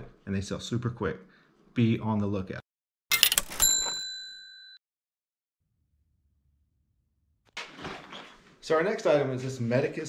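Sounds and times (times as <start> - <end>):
bell ding: 3.1 - 4.8.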